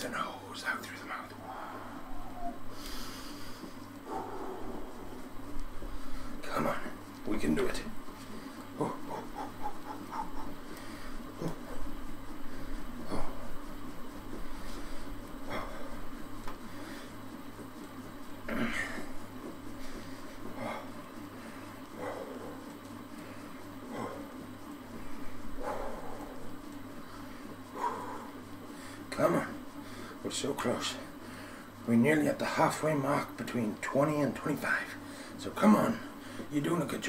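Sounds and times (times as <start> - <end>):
steady low hum: 0.0 - 37.0
man breathing hard: 1.4 - 5.2, 8.3 - 13.7, 14.4 - 17.3, 27.0 - 29.1, 29.8 - 30.2, 31.2 - 31.8, 35.0 - 35.4, 36.1 - 36.5.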